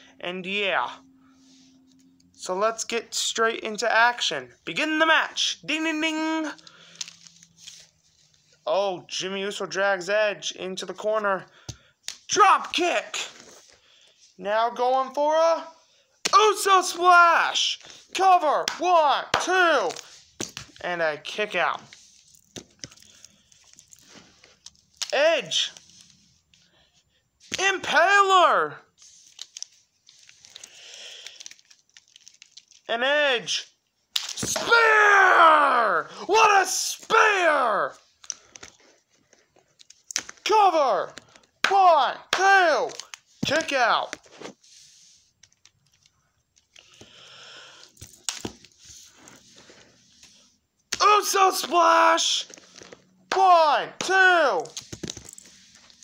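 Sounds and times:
plastic figures rustling: 0:06.2 - 0:08.7, 0:11.1 - 0:14.4, 0:15.6 - 0:28.0, 0:28.9 - 0:32.9, 0:37.9 - 0:47.2, 0:47.8 - 0:53.3, 0:54.0 - 0:56.0.

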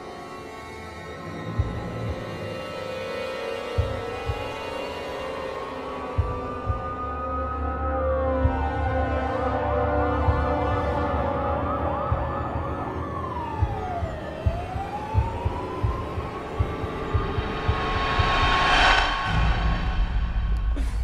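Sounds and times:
emergency vehicle siren: 0:03.8 - 0:17.6
low irregular thumps: 0:13.6 - 0:20.9
low rumble: 0:16.6 - 0:21.0
whoosh: 0:17.5 - 0:20.8.

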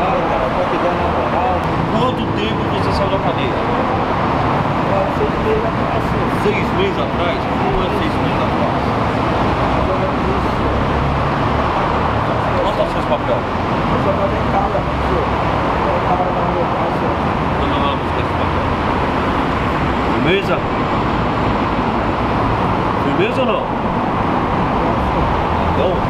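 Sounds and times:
cars driving past: 0:00.0 - 0:26.0.

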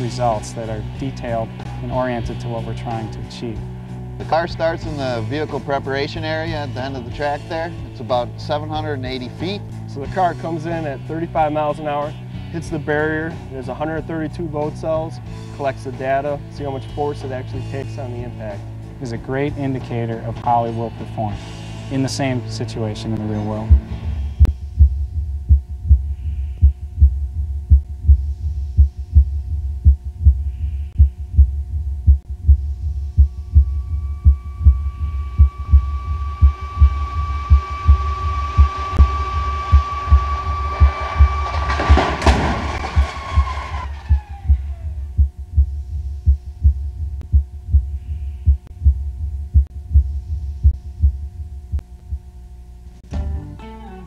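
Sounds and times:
suspense soundtrack: 0:21.3 - 0:52.2
low heartbeat-like pulse: 0:23.6 - 0:52.5
loud crash: 0:40.8 - 0:44.2.

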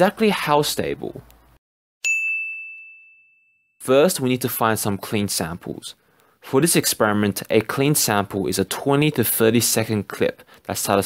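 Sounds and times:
bright bell-like ding: 0:02.0 - 0:03.8.

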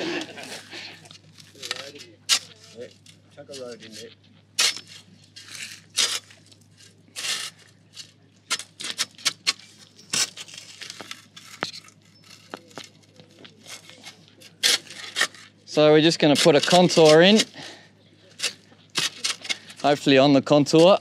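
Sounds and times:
shovel scraping into dry soil: 0:03.5 - 0:12.8, 0:13.6 - 0:15.6.

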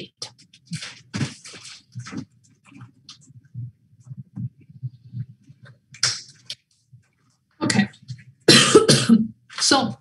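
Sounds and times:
person coughing: 0:08.5 - 0:09.4.

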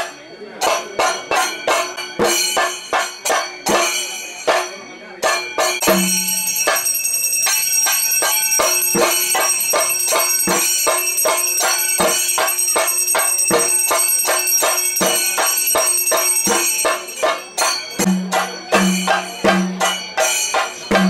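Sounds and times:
bells ringing rapidly: 0:00.0 - 0:21.0.

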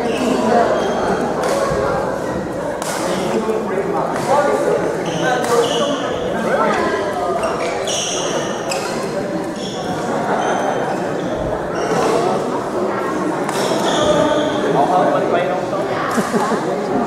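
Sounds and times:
voices in gym hall: 0:00.0 - 0:17.0.

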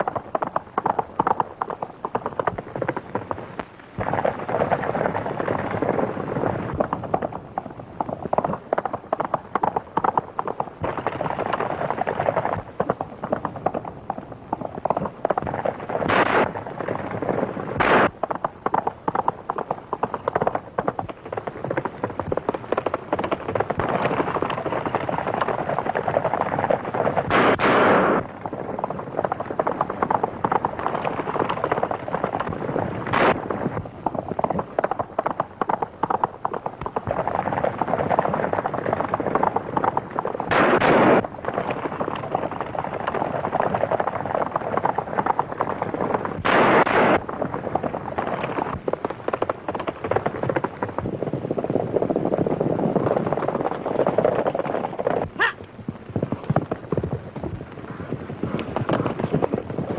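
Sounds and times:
horses galloping: 0:00.0 - 0:59.9
gunshots: 0:16.0 - 0:18.2, 0:27.3 - 0:28.4, 0:33.1 - 0:33.4, 0:40.5 - 0:41.7, 0:46.4 - 0:47.3.

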